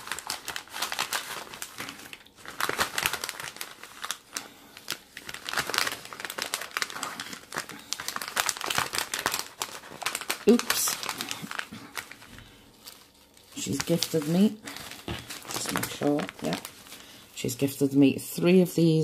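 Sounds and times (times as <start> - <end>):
plastic sleeve crinkling: 0.0 - 18.0.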